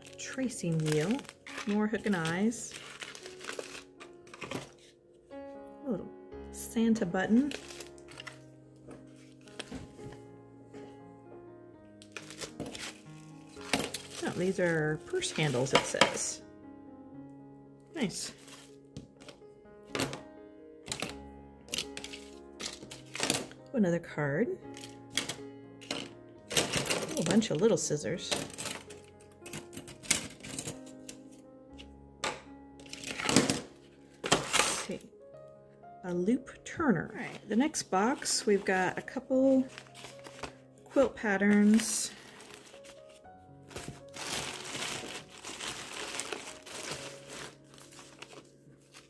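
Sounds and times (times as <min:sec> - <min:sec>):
plastic bag rustling: 0:00.0 - 0:05.0, 0:07.4 - 0:10.2, 0:12.0 - 0:16.4, 0:18.2 - 0:20.2, 0:20.9 - 0:23.6, 0:24.6 - 0:27.6, 0:28.2 - 0:31.2, 0:32.8 - 0:35.0, 0:37.3 - 0:49.0
soft background music: 0:00.0 - 0:49.0
metal scissors clattering in plastic tub: 0:24.8 - 0:27.4, 0:28.3 - 0:30.9.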